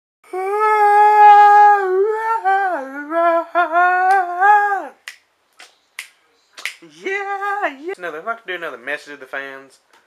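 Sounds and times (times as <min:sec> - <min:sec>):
man vocalizing wavering note: 0:00.2 - 0:05.0.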